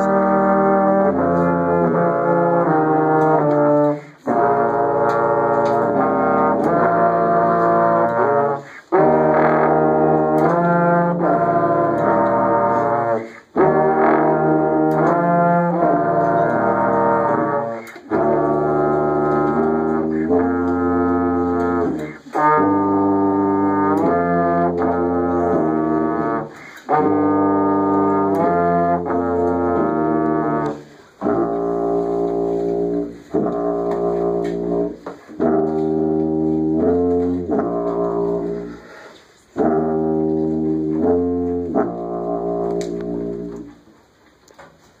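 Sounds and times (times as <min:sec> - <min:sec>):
tuba playing alone: 0:00.0 - 0:44.2
brass trio playing slow tune: 0:00.0 - 0:45.0.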